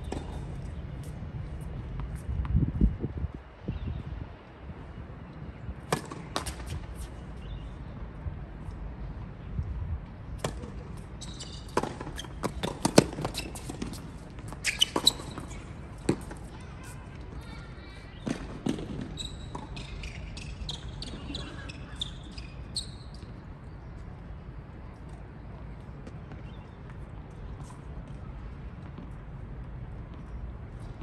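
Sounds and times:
tennis balls struck by rackets: 0:05.8 - 0:07.1, 0:10.3 - 0:16.5
balls bouncing on hard court: 0:10.4 - 0:16.5, 0:18.2 - 0:22.0
shoes squeaking: 0:10.4 - 0:23.8.

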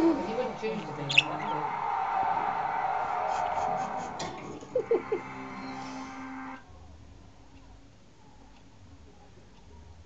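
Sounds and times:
budgerigar chattering: 0:01.0 - 0:01.5.

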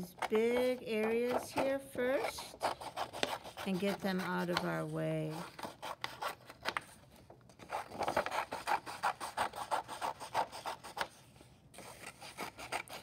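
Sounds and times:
scissors snipping paper: 0:00.0 - 0:06.9, 0:07.6 - 0:11.1, 0:11.8 - 0:13.0.

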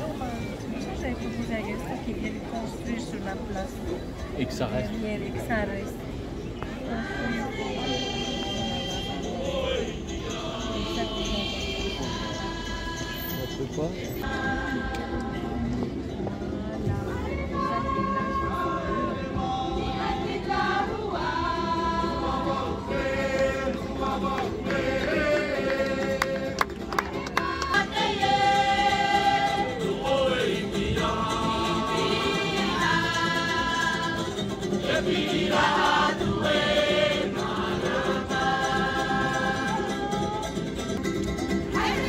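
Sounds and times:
ukuleles and guitars: 0:00.0 - 0:42.0
mixed choir singing in harmony: 0:06.8 - 0:15.8, 0:16.8 - 0:40.7, 0:41.6 - 0:42.0.

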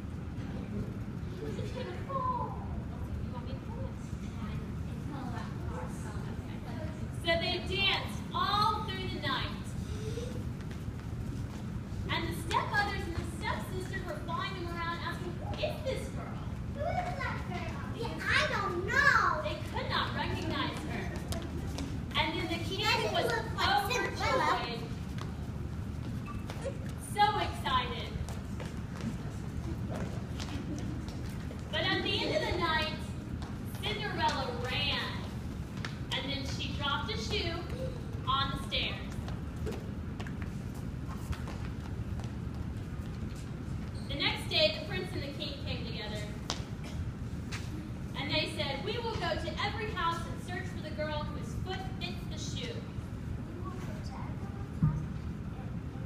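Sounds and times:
low rumble of room noise: 0:00.0 - 0:56.0.

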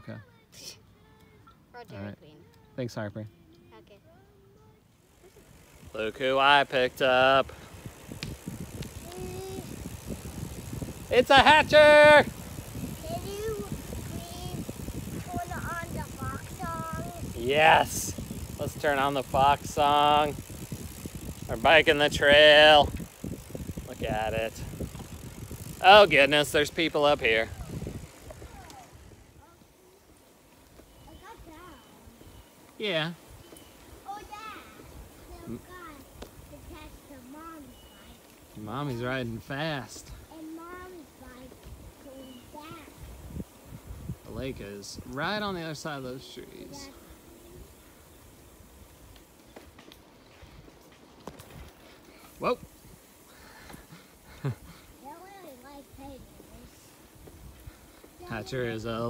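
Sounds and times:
distant voices: 0:02.4 - 0:59.0
bicycle tyres rolling on pavement: 0:04.9 - 0:59.0
wind rumble on microphone: 0:07.4 - 0:29.4, 0:42.9 - 0:45.5.

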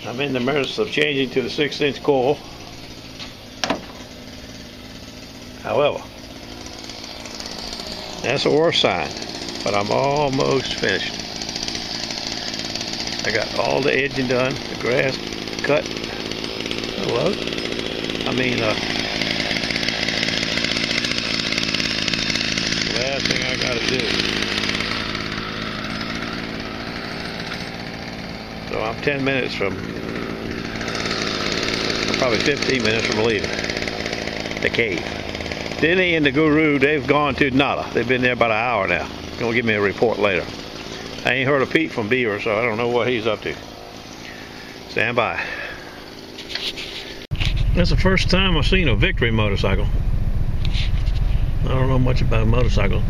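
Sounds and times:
small engine running: 0:00.0 - 0:53.0.

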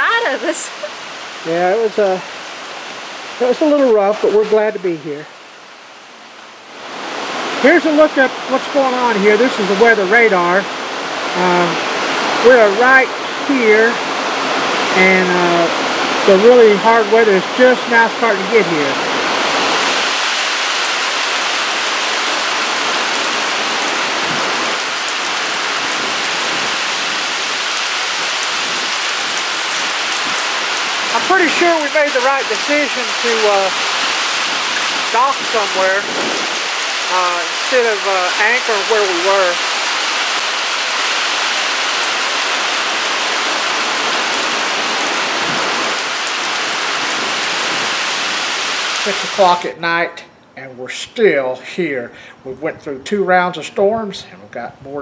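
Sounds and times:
heavy rain on lake: 0:00.0 - 0:51.4.

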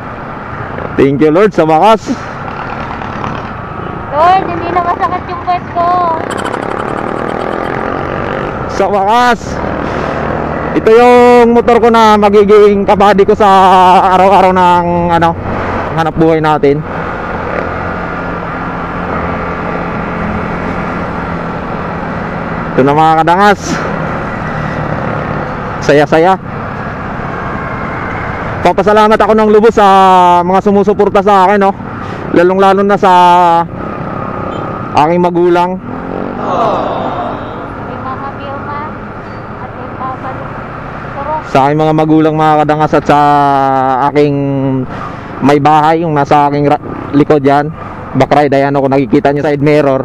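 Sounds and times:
wind and road noise: 0:00.0 - 0:50.0
motorcycle engine cruising: 0:02.3 - 0:10.9, 0:35.4 - 0:37.9
motorcycle engine running: 0:06.0 - 0:08.7.

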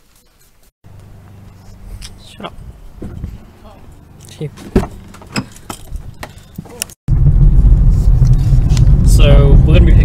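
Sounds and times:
car interior driving rumble: 0:07.1 - 0:10.0.

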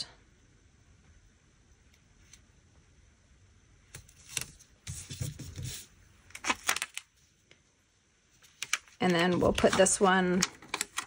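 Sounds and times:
paper rustling: 0:03.9 - 0:07.4, 0:08.4 - 0:11.0.

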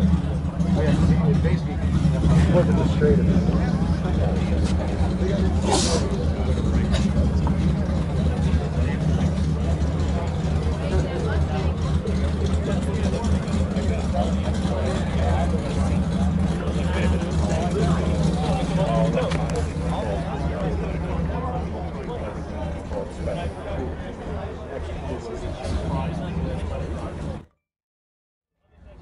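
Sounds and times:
car engine idling: 0:00.0 - 0:27.5
people talking: 0:00.0 - 0:27.5, 0:28.7 - 0:29.0.

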